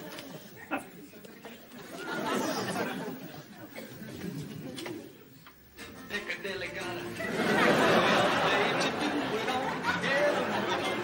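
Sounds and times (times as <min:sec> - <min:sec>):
audience laughing and murmuring: 0:00.0 - 0:11.0.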